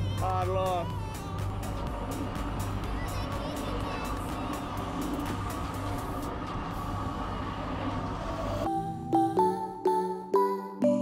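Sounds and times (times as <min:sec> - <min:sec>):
boat engine rumbling: 0:00.0 - 0:09.1
piano music: 0:08.6 - 0:11.0.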